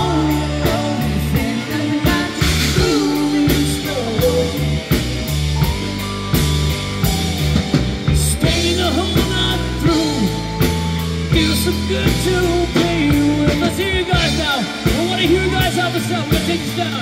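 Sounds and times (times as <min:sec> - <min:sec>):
bass line: 0:00.0 - 0:17.0
drum kit: 0:00.0 - 0:17.0
electric guitar: 0:00.0 - 0:17.0.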